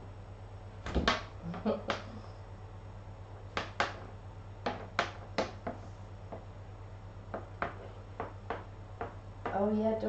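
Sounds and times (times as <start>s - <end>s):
cat paws tapping wooden floor: 3.4s - 6.5s, 7.3s - 9.7s.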